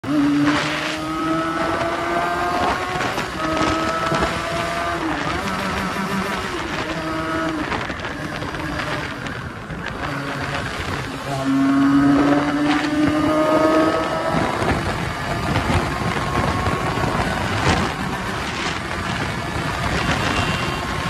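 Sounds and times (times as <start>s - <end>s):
motorcycle engine accelerating: 0.0s - 21.0s
road and wind noise: 0.0s - 21.0s.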